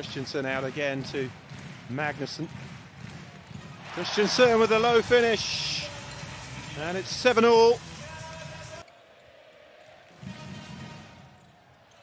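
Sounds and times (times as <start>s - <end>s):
ball bouncing: 1.3s - 3.9s.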